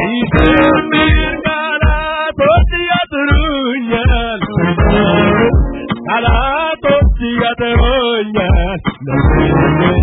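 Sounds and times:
electronic keyboard playing: 0.0s - 7.3s
steady low beat: 0.1s - 10.0s.

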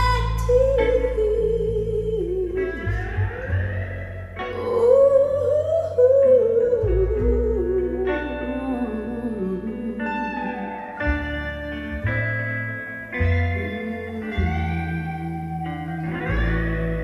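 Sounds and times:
bass notes: 0.0s - 17.0s
electric guitar with sliding notes: 0.0s - 17.0s.

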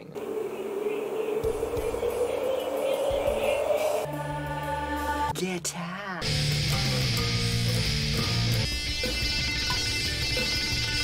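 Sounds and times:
noisy drone rising in pitch: 0.0s - 5.3s.

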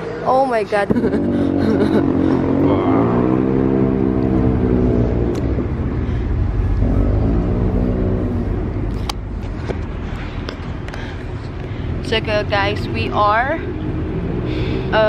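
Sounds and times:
low rumble: 0.0s - 15.0s
vehicle engine revving: 0.0s - 15.0s.

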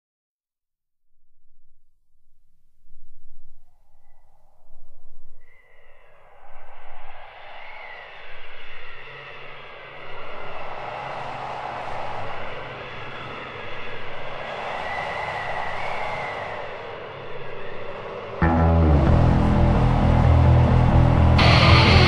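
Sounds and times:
howling wind gusts: 3.6s - 18.4s.

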